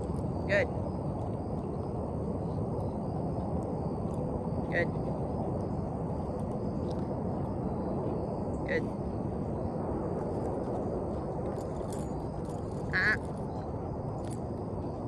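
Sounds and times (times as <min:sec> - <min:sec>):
faint high whine: 0:00.0 - 0:15.0
outdoor background noise: 0:00.0 - 0:15.0
short high-pitched calls: 0:12.9 - 0:13.2.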